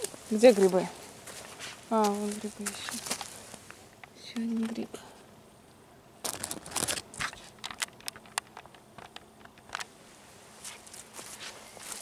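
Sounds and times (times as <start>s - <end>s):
dry leaves crunching underfoot: 0.0s - 3.7s, 6.2s - 7.6s, 9.9s - 12.0s.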